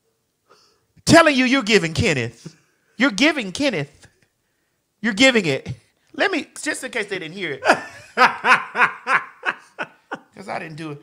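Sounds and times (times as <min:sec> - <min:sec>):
woman laughing: 0:07.6 - 0:10.4.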